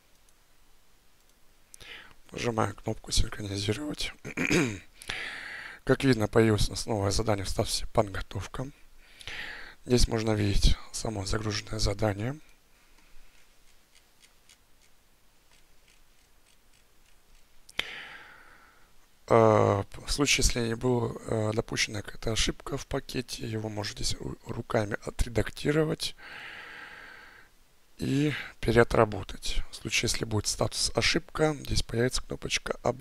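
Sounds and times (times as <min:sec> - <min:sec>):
mouse scroll wheel ticking: 0:13.6 - 0:17.5.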